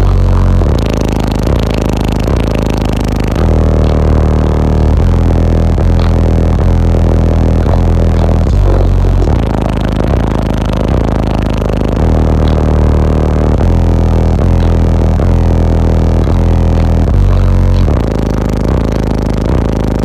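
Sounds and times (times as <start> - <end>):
bass-heavy music through subwoofers: 0.0 - 20.0.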